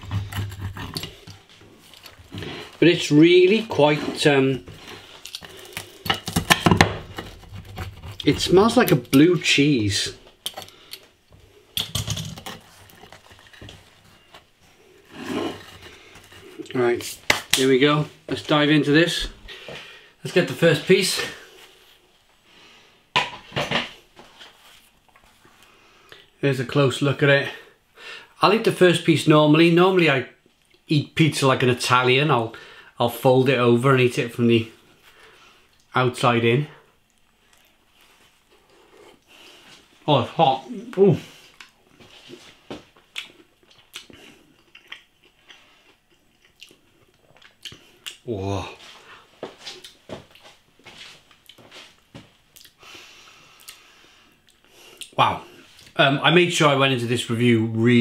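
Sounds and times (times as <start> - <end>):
plate rubbing and scraping: 0.0 - 1.5, 12.4 - 16.7
chewing: 37.0 - 39.3, 43.1 - 48.2.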